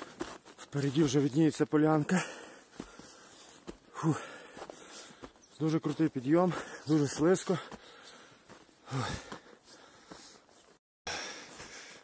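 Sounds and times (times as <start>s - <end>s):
person breathing hard: 2.1s - 5.4s, 7.6s - 10.5s, 11.1s - 12.0s.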